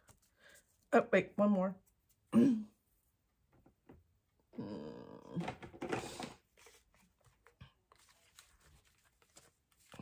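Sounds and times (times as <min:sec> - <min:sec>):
throat clearing: 0:02.3 - 0:02.8
paper rustling and clicks: 0:06.6 - 0:10.0.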